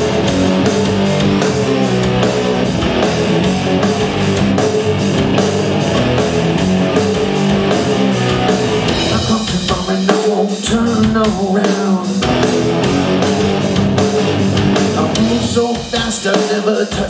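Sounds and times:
rock band playing: 0:00.0 - 0:17.0
lead vocal singing: 0:08.9 - 0:12.6, 0:14.8 - 0:17.0.

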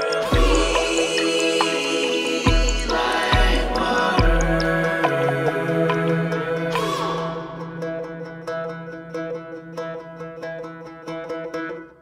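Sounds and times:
low drone: 0:00.0 - 0:09.4
banjo picking single notes: 0:00.0 - 0:12.0.

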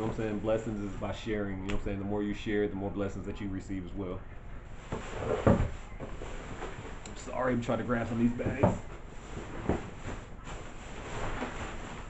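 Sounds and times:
shopping bags rustling: 0:04.7 - 0:12.0.

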